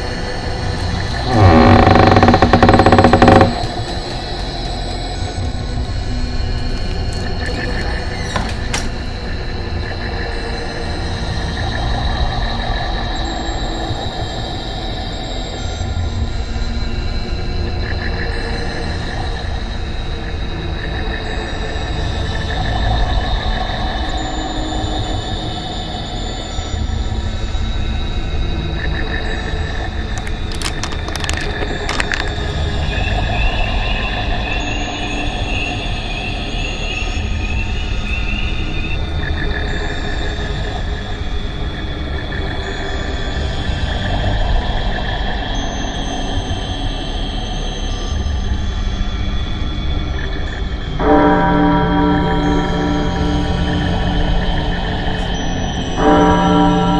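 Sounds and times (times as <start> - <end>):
sustained high tones: 1.2 - 3.8, 51.0 - 56.9
warbling high tone: 51.1 - 55.4.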